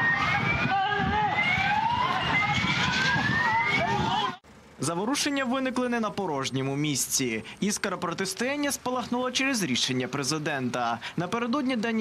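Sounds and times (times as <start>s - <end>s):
electronic siren rising sweeps: 0.0s - 4.4s
street noise: 0.0s - 12.0s.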